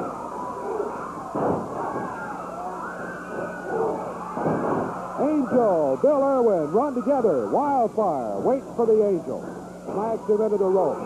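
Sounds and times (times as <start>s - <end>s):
crowd yelling and shrieking: 0.0s - 7.6s.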